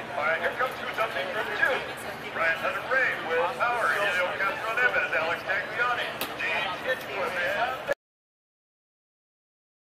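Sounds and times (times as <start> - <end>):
outdoor background noise: 0.0 - 8.0.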